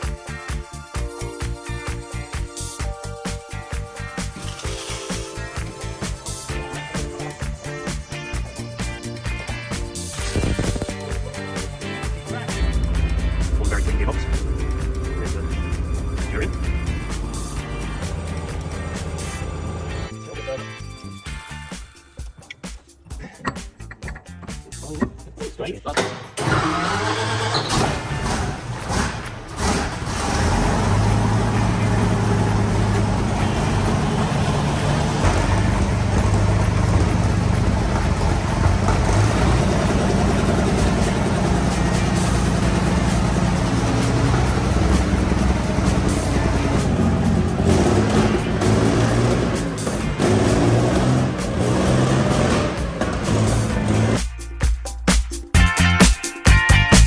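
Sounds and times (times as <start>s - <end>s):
background music: 0.0s - 57.0s
heavy engine droning: 12.6s - 20.2s, 28.2s - 54.0s.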